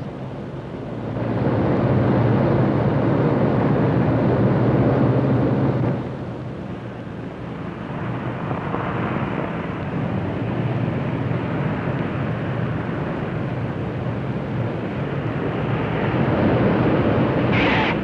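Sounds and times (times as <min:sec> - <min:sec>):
piston airliner engines droning: 0:00.0 - 0:18.0.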